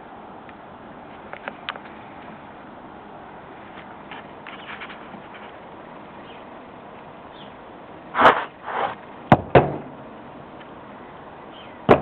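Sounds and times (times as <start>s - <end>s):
short rushing noises: 8.1s - 9.0s.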